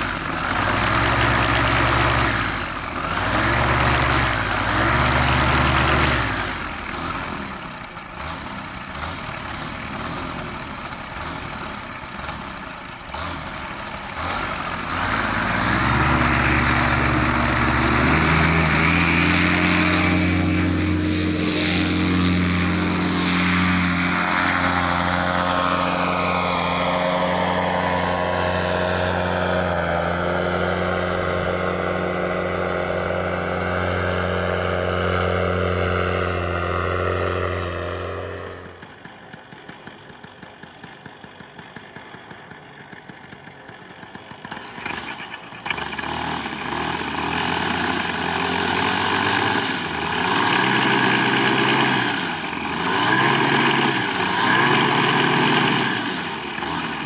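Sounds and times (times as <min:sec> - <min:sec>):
paramotor engine and propeller: 0:00.0 - 0:57.0.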